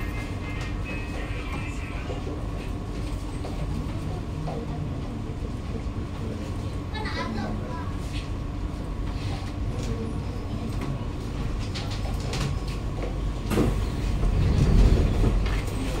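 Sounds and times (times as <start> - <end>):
train carriage low rumble: 0.0 - 16.0
sliding doors opening: 13.5 - 16.0.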